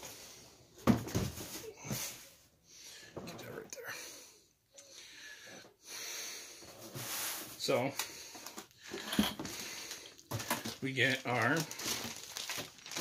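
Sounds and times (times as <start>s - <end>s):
plastic wrapping and paper rustling: 6.8s - 13.0s.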